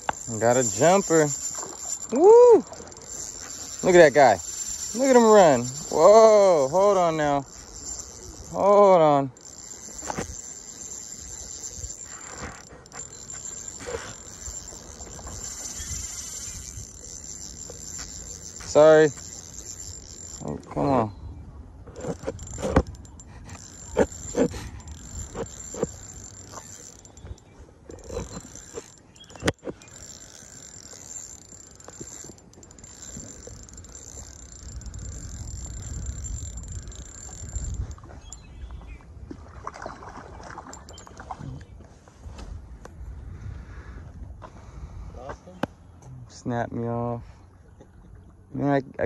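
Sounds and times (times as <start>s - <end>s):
high-pitched insect trill: 0.0s - 20.8s
fishing reel knocks and clicks: 0.0s - 21.1s, 21.8s - 38.6s
low wind rumble: 0.0s - 40.5s, 41.4s - 45.5s.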